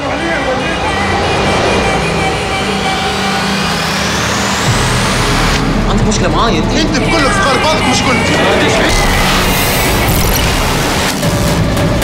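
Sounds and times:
whooshing rising sweep: 0:00.0 - 0:05.7
low steady drone: 0:00.0 - 0:11.4
trailer music: 0:00.0 - 0:12.0.

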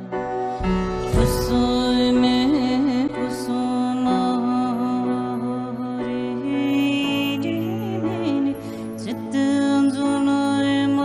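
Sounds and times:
slow meditative chant-like music: 0:00.0 - 0:11.0.

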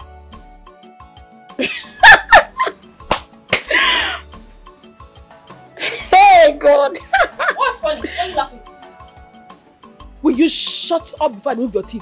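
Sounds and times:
background music: 0:00.0 - 0:12.0
hand claps: 0:03.0 - 0:03.8.

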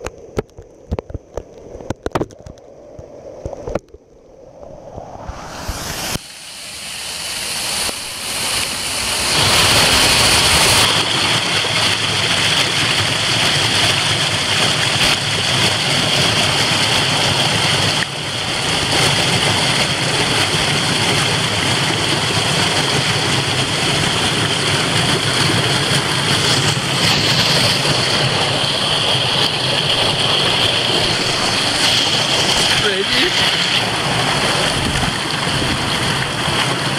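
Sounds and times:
water rushing over rocks: 0:00.0 - 0:36.9.

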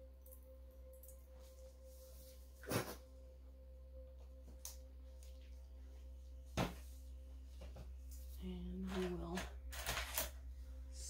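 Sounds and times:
room hum with thin tone: 0:00.0 - 0:11.0.

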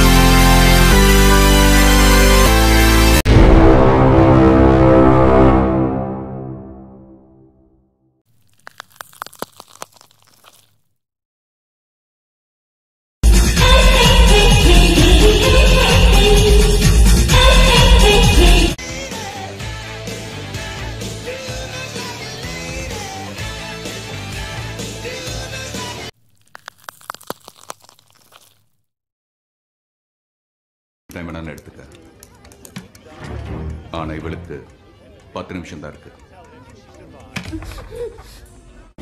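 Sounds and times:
sharp crackling clicks: 0:26.2 - 0:28.6.

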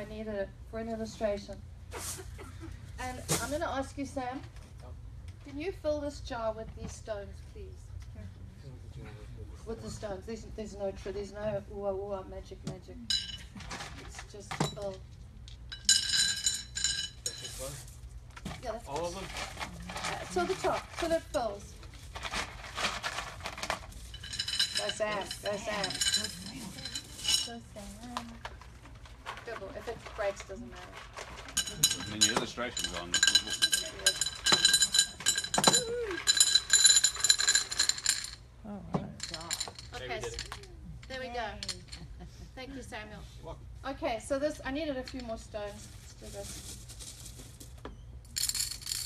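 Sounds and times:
stones clinking in glass jar: 0:13.1 - 0:13.5, 0:15.7 - 0:17.8, 0:23.6 - 0:27.6, 0:31.4 - 0:38.4, 0:39.2 - 0:40.5, 0:48.3 - 0:49.0.

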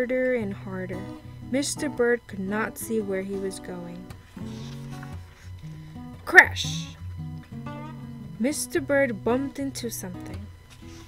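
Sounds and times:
acoustic guitar tune: 0:00.0 - 0:11.0.

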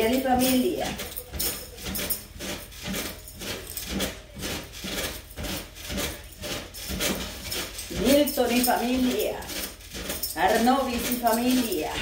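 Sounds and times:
trampoline creaks and thumps: 0:00.0 - 0:12.0.

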